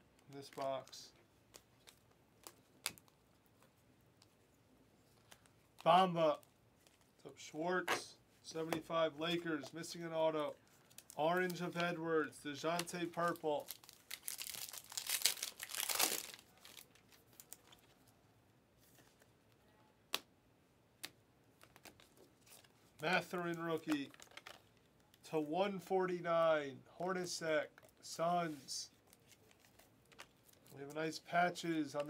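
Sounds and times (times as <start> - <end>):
faint clicks of cards handled: 0.1 - 7.2, 10.7 - 12.0, 21.0 - 25.2, 27.7 - 31.1
card pack wrapper tearing: 13.2 - 17.8.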